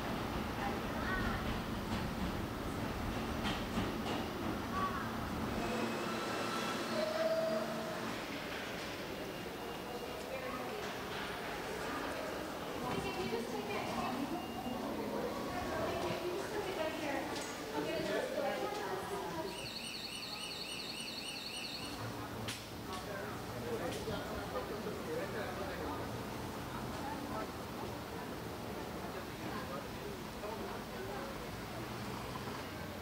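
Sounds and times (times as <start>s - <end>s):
subway train rumbling: 0.0s - 20.1s, 21.8s - 31.9s
steady background noise: 0.0s - 33.0s
short train whine: 5.5s - 8.4s.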